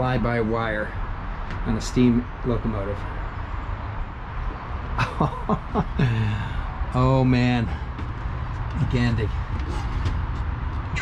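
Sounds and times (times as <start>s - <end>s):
man laughing: 5.0s - 6.7s.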